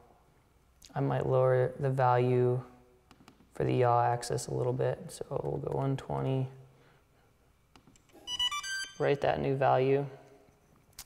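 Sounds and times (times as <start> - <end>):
electronic beeping tune: 8.2 - 9.2.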